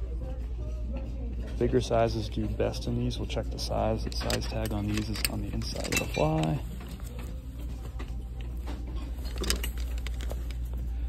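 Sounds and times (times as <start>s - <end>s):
plastic hangers clicking: 4.0s - 7.0s.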